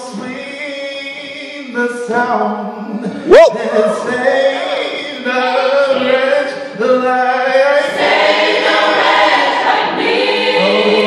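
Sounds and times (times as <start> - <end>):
gospel choir singing: 3.6 - 11.0.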